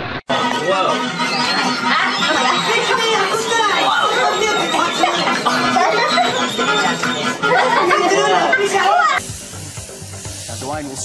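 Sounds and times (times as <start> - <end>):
chatter of a busy room: 0.0 - 11.0
music: 0.0 - 11.0
man talking: 10.5 - 11.0.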